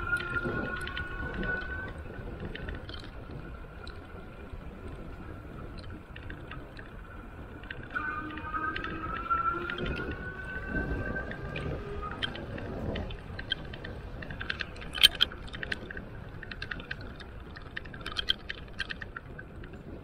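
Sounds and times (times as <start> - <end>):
small clicks and ticks: 0.0 - 20.0
tyre and wind rumble: 0.0 - 20.0.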